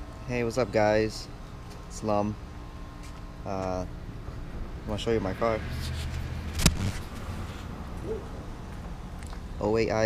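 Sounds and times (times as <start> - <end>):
camera handling rumble: 5.8 - 7.2
sharp click: 6.5 - 7.0.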